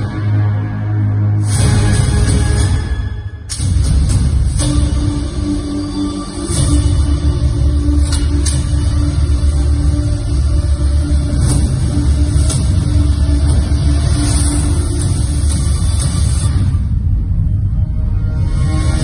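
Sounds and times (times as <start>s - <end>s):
music over loudspeakers: 0.0s - 17.5s.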